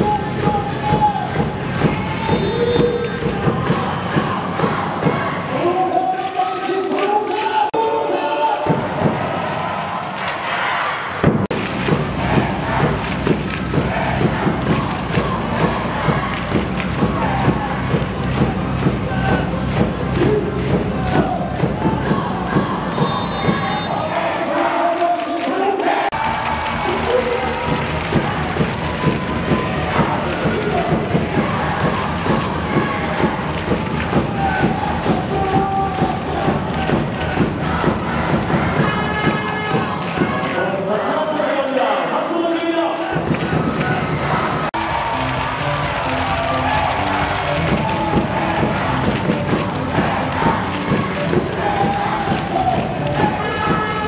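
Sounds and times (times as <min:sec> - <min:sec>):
bass drum beat: 0:00.0 - 0:05.5, 0:08.6 - 0:09.4, 0:11.2 - 0:23.9, 0:26.1 - 0:40.6, 0:43.1 - 0:54.0
cheer music over sound system: 0:00.0 - 0:54.0
crowd cheering and chanting: 0:00.0 - 0:54.0.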